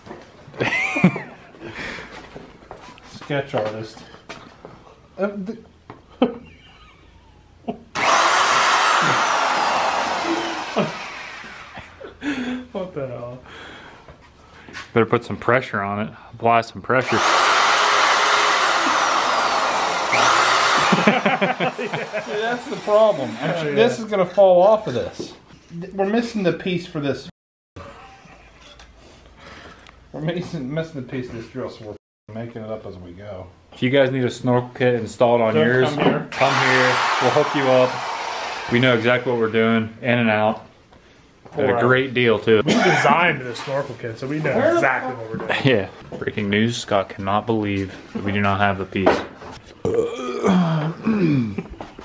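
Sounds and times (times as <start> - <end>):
man groaning: 49.9 - 51.7.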